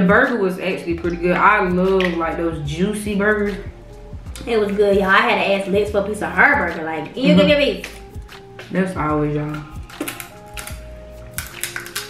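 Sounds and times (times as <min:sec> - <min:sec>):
soft background music: 0:00.0 - 0:12.0
crab shell cracking while eating: 0:07.8 - 0:08.7, 0:09.5 - 0:12.0.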